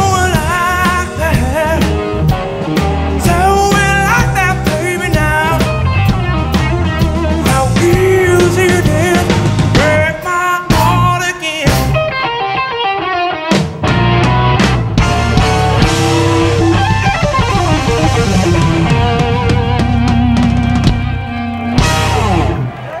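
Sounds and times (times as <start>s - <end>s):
bass guitar: 0.0s - 23.0s
drums: 0.0s - 23.0s
electric guitar lead: 0.0s - 23.0s.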